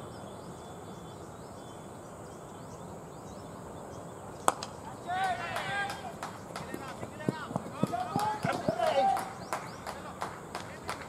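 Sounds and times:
players shouting calls: 4.5 - 11.0.

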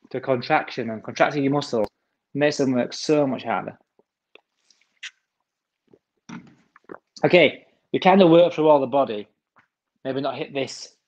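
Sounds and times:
man gulping: 3.8 - 7.3
man sipping from water bottle: 4.0 - 7.2.

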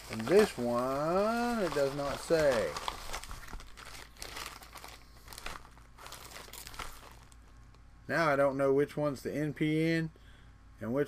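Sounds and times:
plastic bag crinkling: 0.0 - 7.6.

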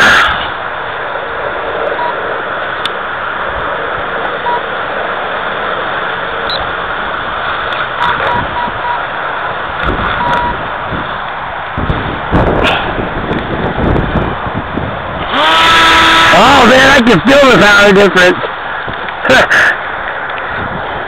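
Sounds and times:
wind rushing on microphone: 0.0 - 21.0
short electronic beeps: 2.0 - 2.2, 4.4 - 4.6, 8.0 - 9.0, 10.2 - 10.6.

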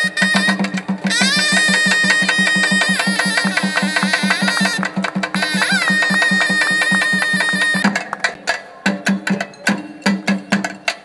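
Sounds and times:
shrill reed pipe: 0.0 - 7.9
fast drum beat: 0.1 - 11.0.

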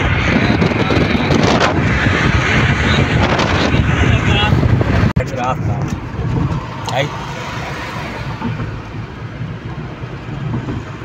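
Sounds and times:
car road and wind noise: 0.0 - 11.0
wind buffeting microphone: 0.0 - 11.0.

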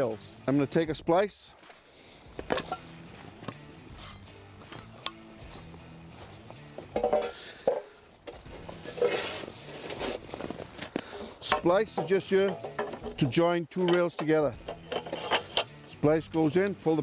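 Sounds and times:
soft background music: 0.0 - 17.0
metal rails clinking and knocking: 6.8 - 9.4, 11.4 - 15.7.

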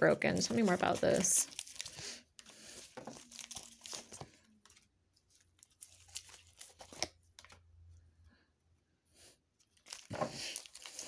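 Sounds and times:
cards being shuffled: 5.6 - 7.6.

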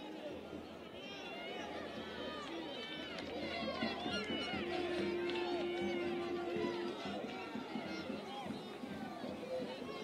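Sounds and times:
people shouting and talking: 0.0 - 10.0
spectators' voices: 0.0 - 10.0.

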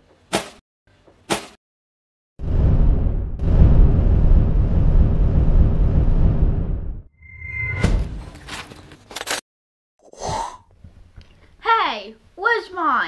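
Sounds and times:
handling noises: 8.2 - 9.4.

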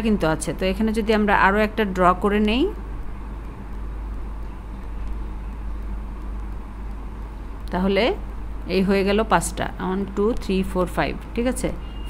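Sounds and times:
low background rumble: 0.0 - 11.9.

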